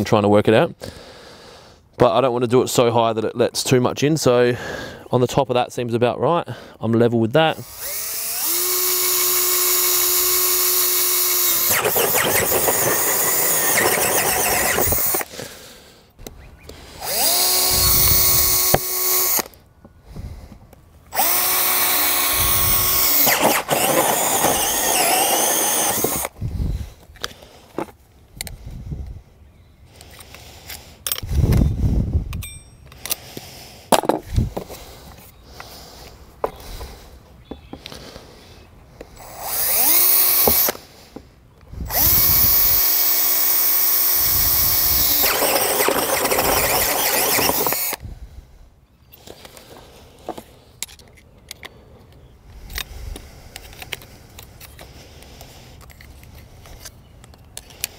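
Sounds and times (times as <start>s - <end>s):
drill hole saw cutting plastic: 7.5s - 15.3s, 17.0s - 19.6s, 21.1s - 26.4s, 39.2s - 40.8s, 41.8s - 48.0s.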